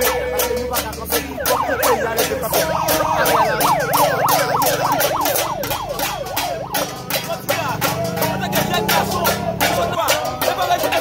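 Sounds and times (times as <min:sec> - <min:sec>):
megaphone siren yelping: 0:00.0 - 0:10.0
hand drum beaten with stick: 0:00.0 - 0:11.0.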